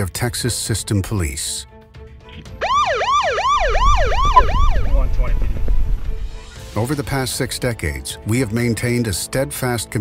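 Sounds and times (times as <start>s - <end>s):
police siren yelping: 2.5s - 5.1s.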